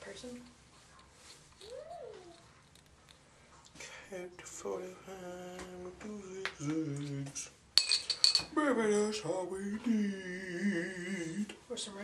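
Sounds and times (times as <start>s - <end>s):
metal cap clinking on glass bottle: 7.8s - 8.5s.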